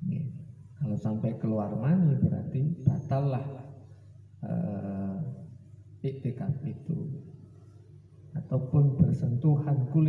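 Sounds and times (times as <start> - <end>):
man saying eh: 4.4 - 5.4.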